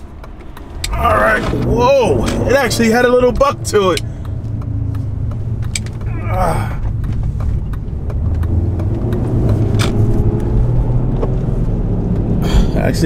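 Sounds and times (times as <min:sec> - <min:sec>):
car engine droning in cabin: 0:00.0 - 0:13.0
road noise: 0:00.0 - 0:13.0.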